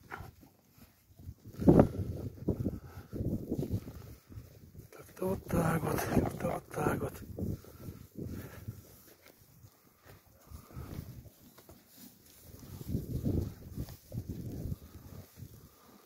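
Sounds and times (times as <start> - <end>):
horses moving on hay and snow: 0.0 - 16.0
low horse sounds: 0.0 - 16.0.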